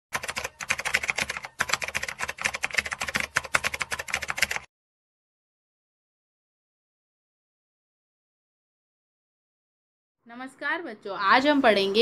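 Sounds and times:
keyboard typing clicks: 0:00.2 - 0:04.7.

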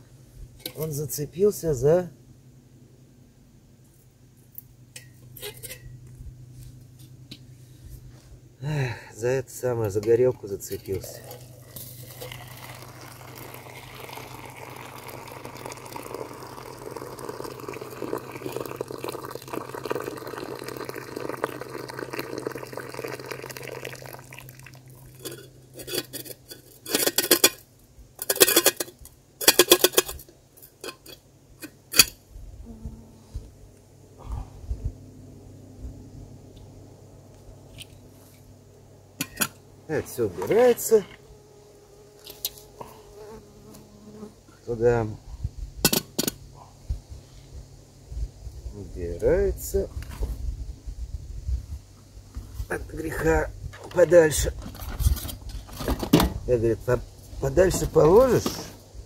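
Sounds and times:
hot water pouring into pot: 0:11.0 - 0:25.4.

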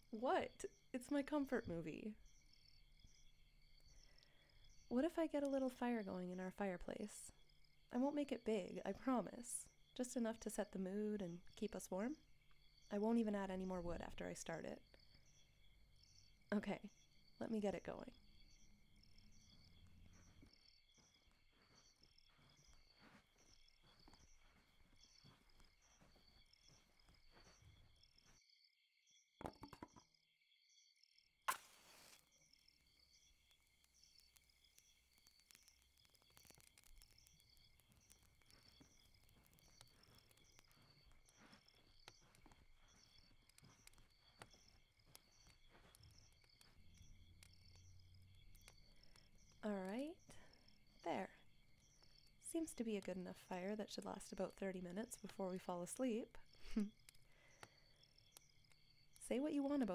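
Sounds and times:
crickets chirping: 0:00.0 - 0:28.9, 0:30.6 - 0:59.9
match strike: 0:31.5 - 0:32.3.

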